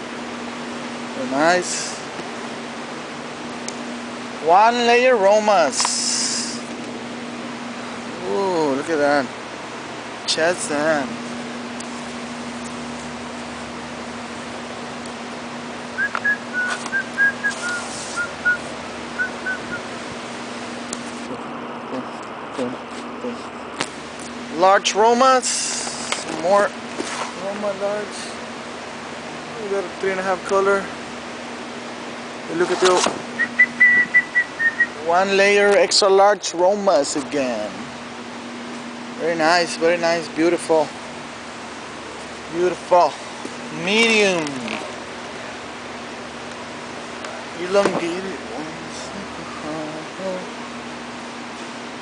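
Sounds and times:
steady low hum: 0.0s - 52.0s
person whistling: 16.0s - 18.6s, 19.2s - 19.8s, 33.4s - 35.0s.

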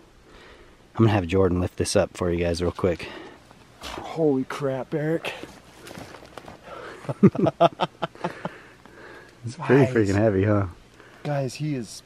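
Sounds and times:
man laughing: 6.8s - 8.7s.

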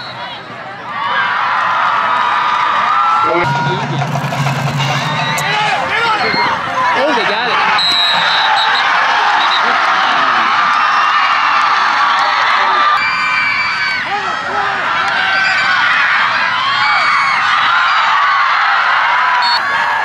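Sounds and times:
stadium crowd cheering and shouting: 0.0s - 20.0s.

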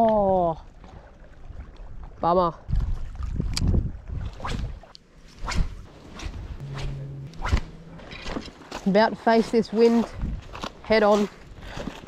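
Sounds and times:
wind buffeting microphone: 1.5s - 11.8s
low hum: 5.2s - 9.2s.

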